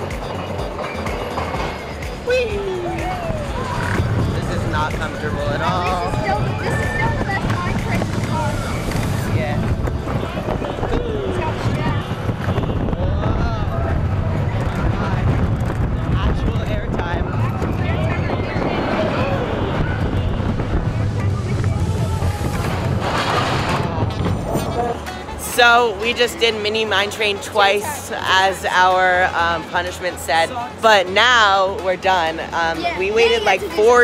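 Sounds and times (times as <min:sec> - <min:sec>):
roller coaster rumble: 0:00.0 - 0:26.2
wind buffeting microphone: 0:02.8 - 0:25.0.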